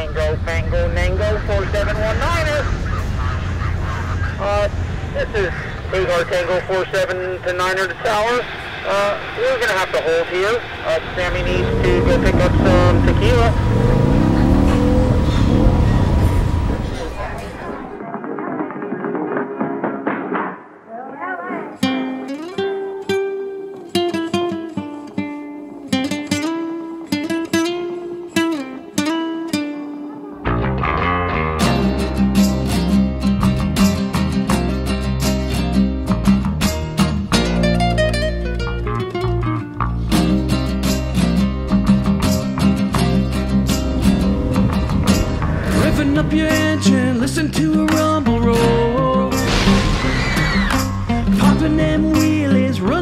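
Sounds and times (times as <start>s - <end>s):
bass guitar: 10.9s - 18.0s, 27.2s - 53.0s
flamenco guitar melody: 21.6s - 53.0s
drums steady beat: 50.7s - 52.8s.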